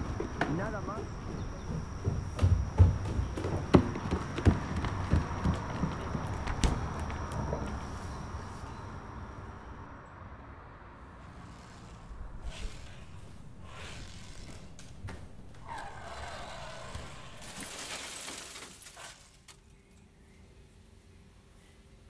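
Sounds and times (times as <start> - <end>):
soft knocks: 0.0 - 7.8
footsteps: 0.0 - 8.9, 11.3 - 16.2.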